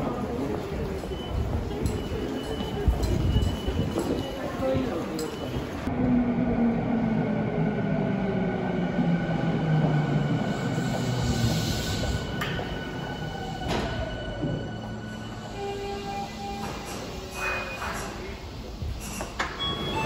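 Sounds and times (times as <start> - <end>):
electric train braking to a stop: 10.0 - 20.0.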